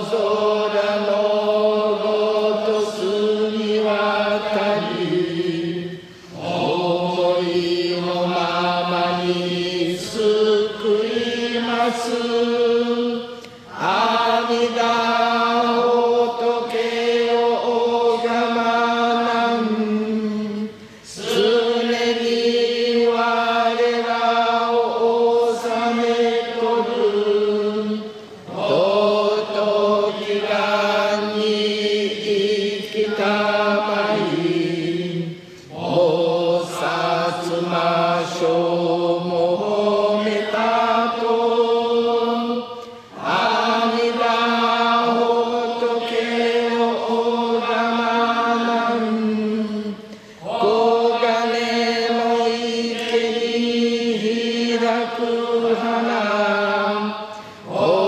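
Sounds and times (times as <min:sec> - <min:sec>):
voices chanting: 0:00.0 - 0:58.0.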